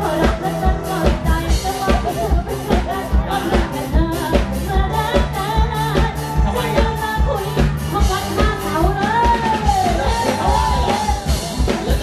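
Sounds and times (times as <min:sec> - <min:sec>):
live band playing pop: 0:00.0 - 0:12.0
woman singing into microphone: 0:00.0 - 0:12.0.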